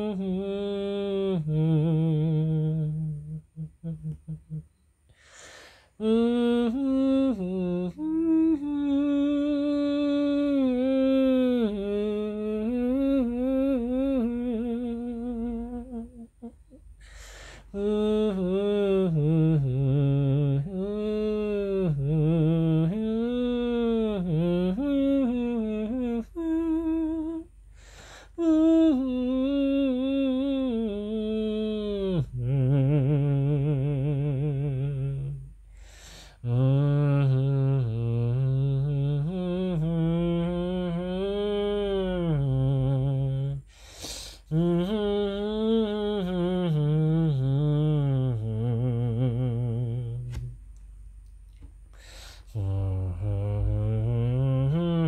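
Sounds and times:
person humming a melody: 0:00.0 - 0:04.8, 0:06.0 - 0:16.9, 0:17.6 - 0:27.6, 0:28.2 - 0:35.6, 0:36.4 - 0:50.6, 0:52.4 - 0:55.0.

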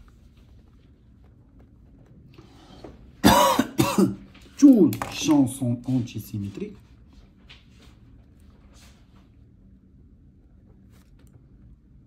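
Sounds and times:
man coughing: 0:03.2 - 0:04.2.

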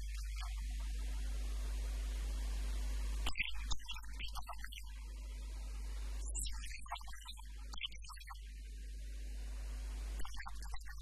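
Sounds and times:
electrical mains hum: 0:00.0 - 0:11.0
microphone hiss: 0:00.0 - 0:11.0.

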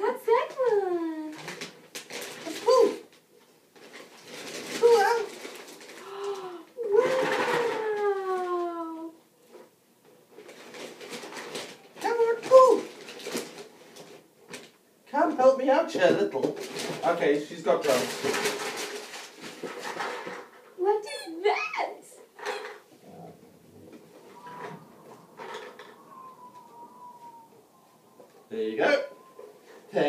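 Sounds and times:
wrapping paper crinkling and tearing: 0:01.3 - 0:09.0, 0:10.3 - 0:14.8, 0:16.4 - 0:20.5
drawn-out falling voice sounds: 0:06.0 - 0:09.1, 0:23.2 - 0:30.0.

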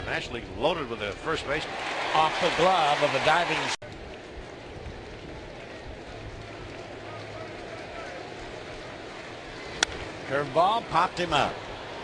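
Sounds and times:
crowd murmur: 0:04.0 - 0:12.0
baseball bat cracking ball: 0:09.8 - 0:10.0.

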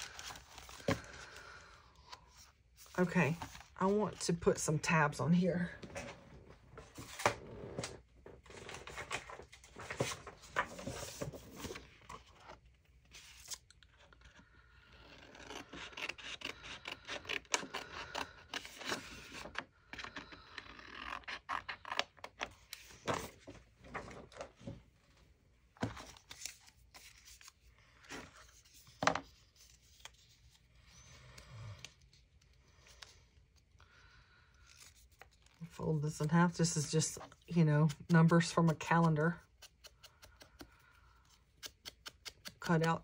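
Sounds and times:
paper rustling and scraping: 0:00.0 - 0:01.4, 0:02.1 - 0:04.0, 0:06.0 - 0:14.4, 0:25.8 - 0:31.1.

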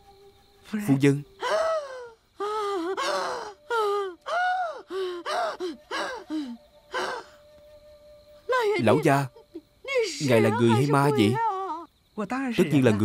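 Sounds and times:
woman gasping cries of fright: 0:01.4 - 0:07.4.

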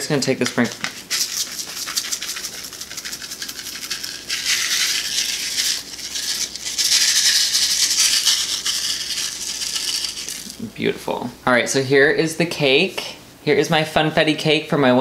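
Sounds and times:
sprinkles rattling in plastic containers: 0:00.2 - 0:10.6.

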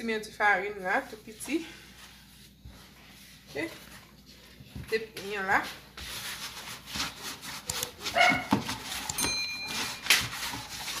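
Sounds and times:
hands kneading bread dough: 0:00.0 - 0:11.0.

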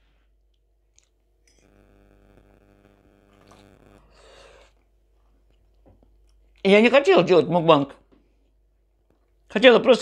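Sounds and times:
faint steady hum: 0:00.0 - 0:10.0
faint eating sounds: 0:00.2 - 0:01.7, 0:03.3 - 0:06.7.

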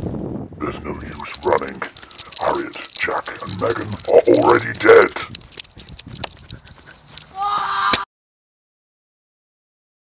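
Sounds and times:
person speaking: 0:00.6 - 0:05.7
short clicks: 0:01.0 - 0:07.3.

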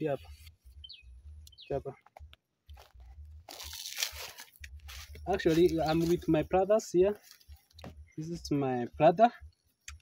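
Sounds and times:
crunching rustle: 0:02.6 - 0:06.5.

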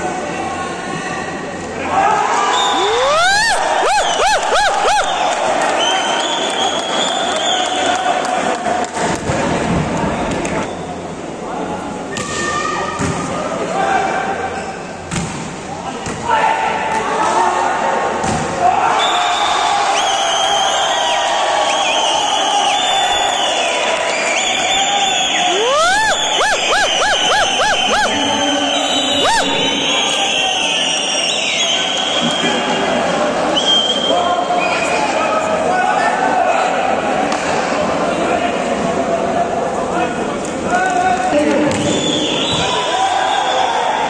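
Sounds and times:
crowd shouting and cheering: 0:00.0 - 0:15.1, 0:15.7 - 0:40.0
rising whistles: 0:02.5 - 0:07.8, 0:19.0 - 0:32.6, 0:42.0 - 0:43.9.

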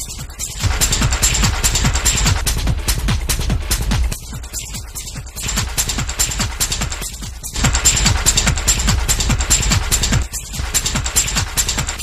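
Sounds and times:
clicking metallic percussion: 0:00.0 - 0:12.0
kick drum: 0:00.0 - 0:12.0
techno music: 0:00.0 - 0:12.0.

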